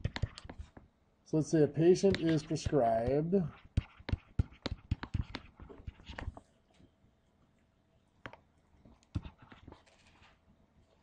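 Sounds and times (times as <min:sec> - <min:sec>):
stylus tapping on tablet screen: 0:00.0 - 0:00.8, 0:02.0 - 0:06.4, 0:09.0 - 0:09.7.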